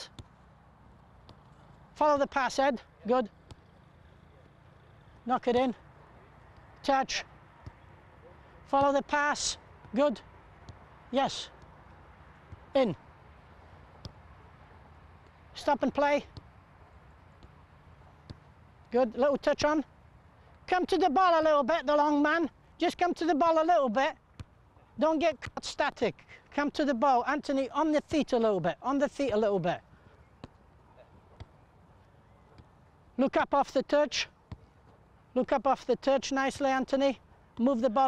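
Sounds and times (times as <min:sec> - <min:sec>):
soccer ball being kicked: 0:00.0 - 0:02.6, 0:03.2 - 0:04.6, 0:06.5 - 0:19.7, 0:24.2 - 0:24.6, 0:30.3 - 0:31.7, 0:32.3 - 0:33.5, 0:34.4 - 0:35.0
faint outdoor background noise: 0:00.0 - 0:38.0.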